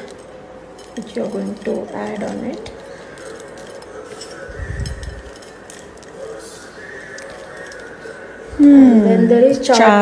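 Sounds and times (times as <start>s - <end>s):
crackly rustling of dry snack: 0.0s - 8.2s.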